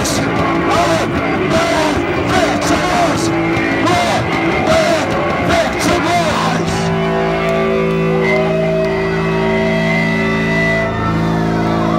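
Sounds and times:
drums: 0.0s - 11.9s
electric guitar and bass droning chord: 0.0s - 11.9s.

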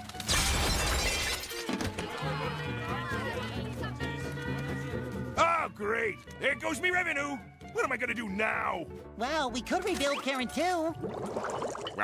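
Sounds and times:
music: 0.0s - 12.0s
loud shattering crash: 0.3s - 1.7s.

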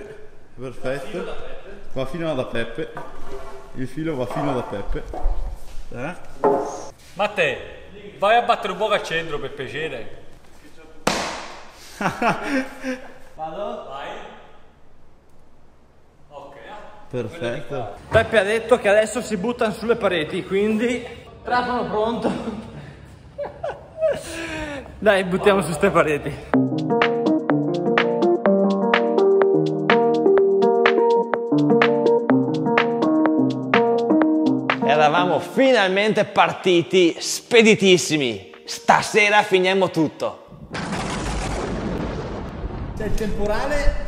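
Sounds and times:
man making wordless sounds: 34.7s - 39.6s
thunder rumbling: 40.5s - 44.0s.

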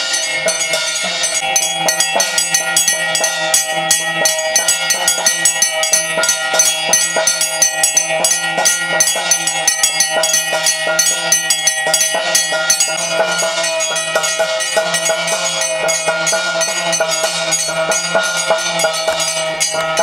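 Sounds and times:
fast drumbeats: 0.0s - 20.0s
held melody: 0.0s - 20.0s.

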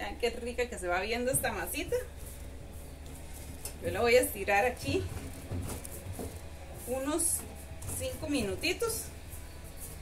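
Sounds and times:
steady low hum: 0.0s - 10.0s
hands kneading dough: 0.9s - 10.0s.

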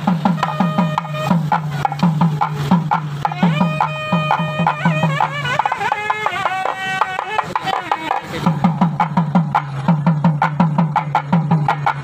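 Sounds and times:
hand drum beating: 0.0s - 12.0s.

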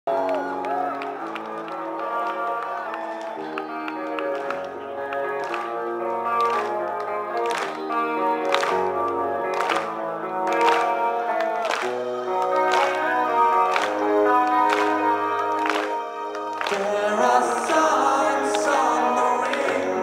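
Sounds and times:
crowd voices and shouts: 0.1s - 20.0s
live rock band: 0.1s - 20.0s.

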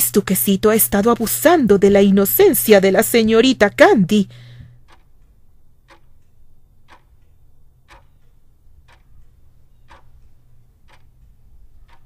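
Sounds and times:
quiet even ticking: 0.0s - 12.0s.

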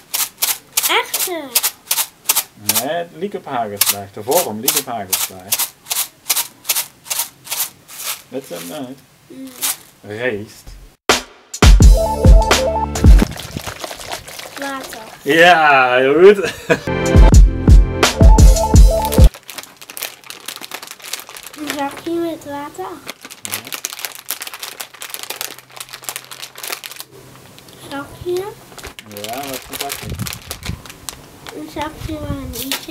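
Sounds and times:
plastic packet crinkling: 9.4s - 10.0s, 13.2s - 15.3s, 19.3s - 31.9s
rice rattling in plastic container: 13.2s - 15.2s.

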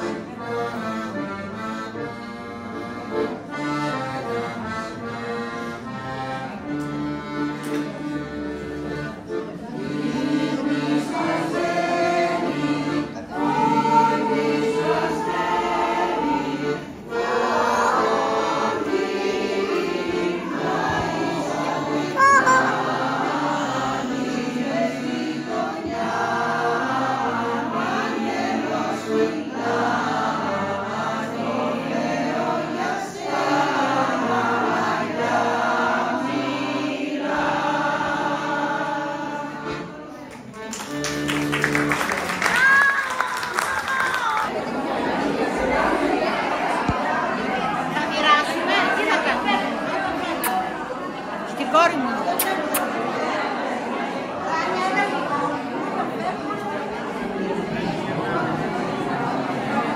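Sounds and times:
accordion: 0.0s - 42.6s, 44.3s - 59.9s
women's choir singing: 9.2s - 40.4s, 43.3s - 59.9s.

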